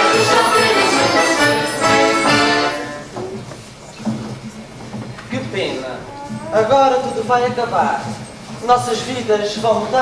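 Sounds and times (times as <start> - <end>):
accordion and guitars folk tune: 0.0 - 3.2.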